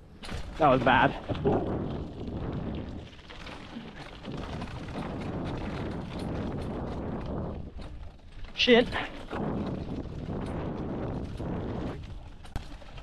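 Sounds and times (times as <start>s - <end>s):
bike rattling over bumps: 0.0s - 13.0s
bike tyres on dirt: 0.0s - 13.0s
wind rumble on microphone: 0.1s - 13.0s.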